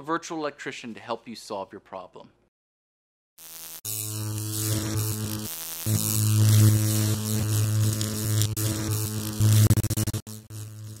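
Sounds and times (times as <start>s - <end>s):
neon light buzzing with crackle: 3.4s - 11.0s.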